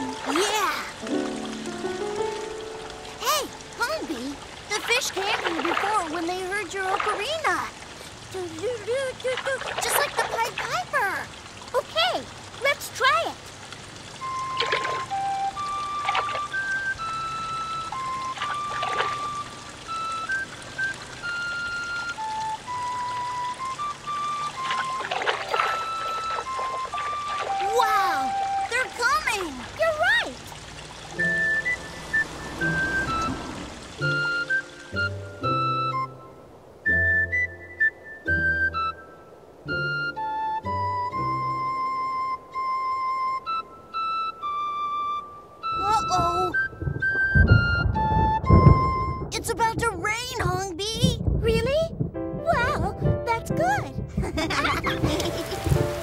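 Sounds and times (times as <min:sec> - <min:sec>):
fountain water splashing: 0:00.0 - 0:39.0, 0:52.5 - 0:56.0
ocarina playing slow melody: 0:14.2 - 0:28.7, 0:36.9 - 0:49.3.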